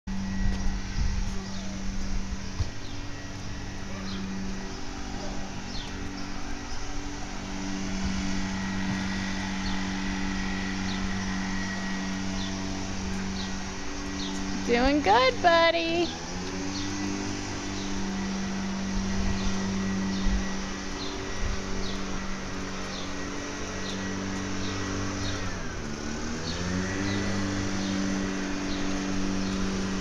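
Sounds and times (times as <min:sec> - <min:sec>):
low mechanical hum: 0:00.1 - 0:30.0.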